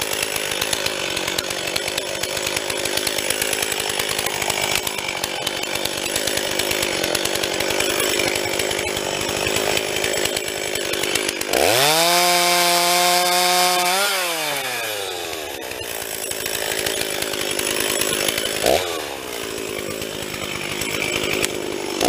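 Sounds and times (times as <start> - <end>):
chainsaw idling and revving: 0.0 - 22.0.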